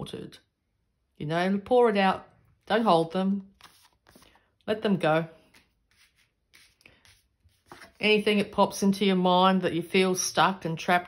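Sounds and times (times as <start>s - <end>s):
cards rustling on cloth: 3.4s - 4.6s, 5.3s - 8.5s.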